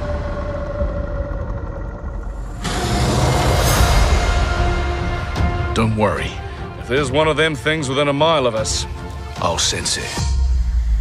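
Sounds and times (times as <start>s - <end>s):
deep rumble: 0.0s - 7.5s.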